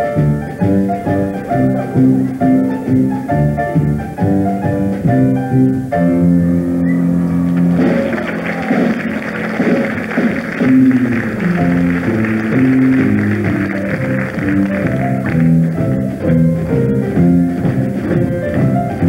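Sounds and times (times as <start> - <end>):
high hiss: 0.0 - 19.0
orchestra playing dance music: 0.0 - 19.0.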